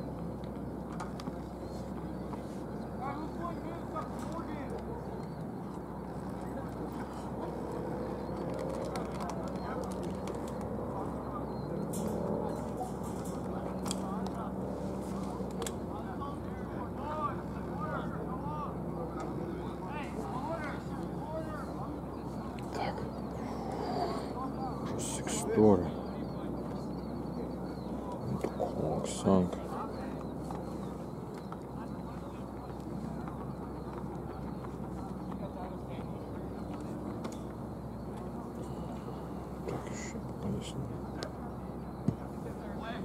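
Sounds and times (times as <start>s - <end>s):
distant players calling out: 15.2s - 43.0s.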